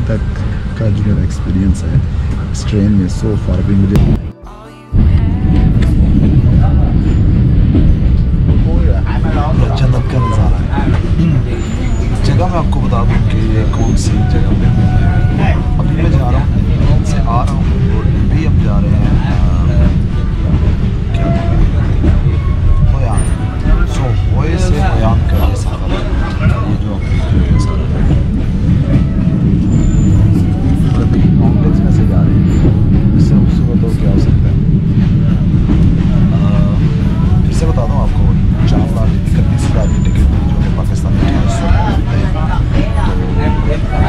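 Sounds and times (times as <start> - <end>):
train low rumble: 0.0 - 44.0
voices talking: 0.0 - 44.0.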